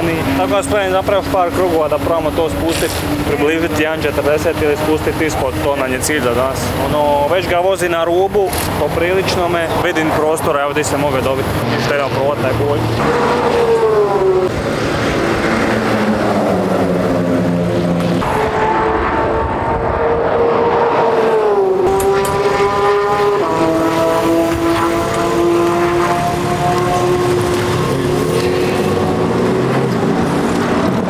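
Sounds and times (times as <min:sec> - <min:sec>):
car engines running lower: 0:00.0 - 0:31.0
race car engine high revs: 0:08.5 - 0:31.0.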